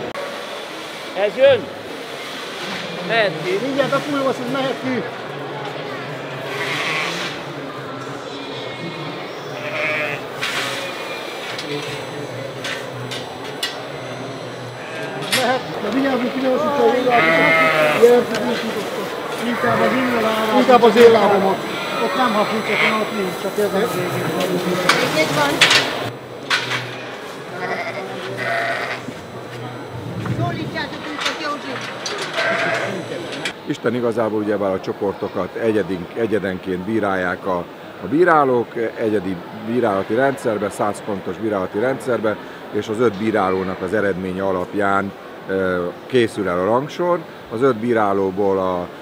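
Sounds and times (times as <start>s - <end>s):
murmur of voices in a hall: 0.0s - 49.0s
sheep bleating: 6.4s - 7.4s, 9.5s - 11.2s, 16.8s - 18.4s, 19.4s - 23.2s, 27.5s - 29.1s, 32.2s - 33.1s.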